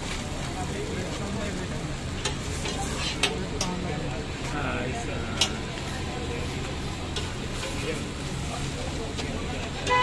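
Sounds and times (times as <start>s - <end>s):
food sizzling on a griddle: 0.0s - 10.0s
spatula clanking on griddle: 2.2s - 3.8s.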